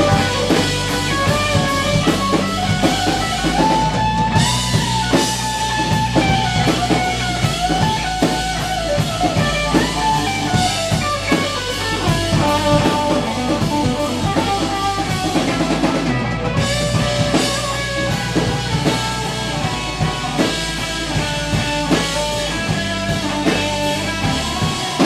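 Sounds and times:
lead electric guitar melody: 0:00.0 - 0:25.0.

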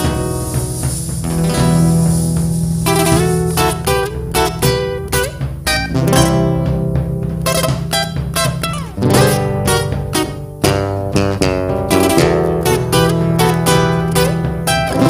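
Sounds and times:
acoustic guitars picking melody: 0:00.0 - 0:15.0
electric bass: 0:00.0 - 0:15.0
large drum strikes: 0:00.0 - 0:15.0.

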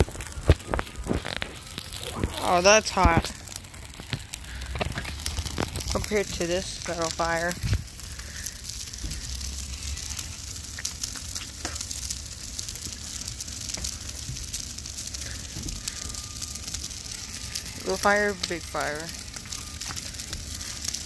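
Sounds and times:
burning leaves crackling and hissing: 0:00.0 - 0:21.0
fire popping: 0:00.0 - 0:21.0.

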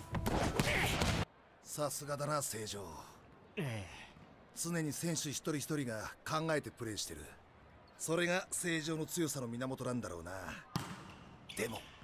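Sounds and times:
volleyball bouncing on gym floor: 0:10.7 - 0:11.2.

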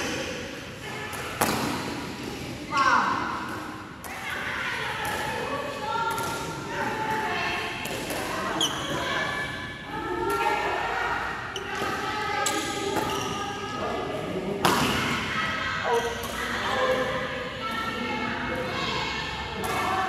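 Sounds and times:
shoes squeaking on court: 0:08.6 - 0:09.1, 0:12.5 - 0:13.5.

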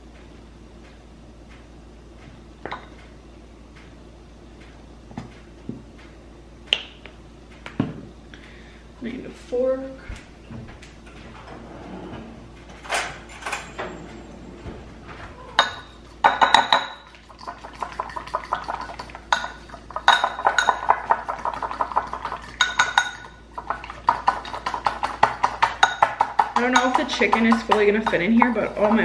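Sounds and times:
fork whisking in ceramic bowl: 0:16.1 - 0:29.0.

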